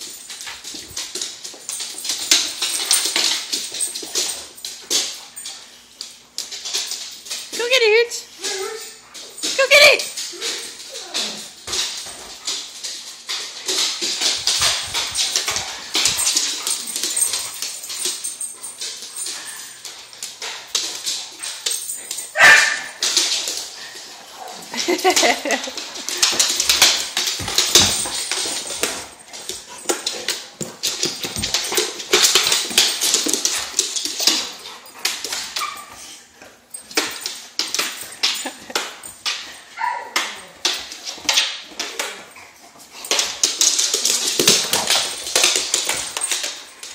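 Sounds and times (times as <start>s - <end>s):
paws and ball knocking on floor: 11.2s - 24.0s, 24.6s - 35.8s, 43.0s - 46.9s
dog noises: 14.2s - 37.2s
dog barking in play: 22.4s - 23.0s.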